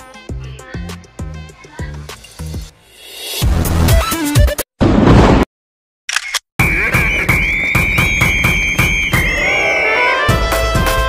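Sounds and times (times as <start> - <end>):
outro music with steady beat: 0.0 - 4.6.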